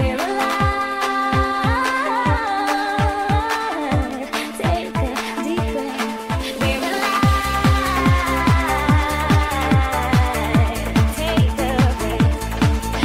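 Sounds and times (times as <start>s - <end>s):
kick drum: 0.0s - 0.8s, 1.4s - 13.0s
high gliding lead melody: 5.0s - 13.0s.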